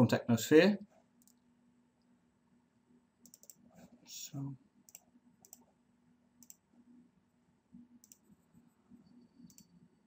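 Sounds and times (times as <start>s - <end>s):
computer mouse clicks: 1.2s - 1.4s, 3.2s - 3.6s, 4.9s - 5.7s, 6.4s - 6.6s, 8.0s - 8.3s, 9.3s - 9.8s.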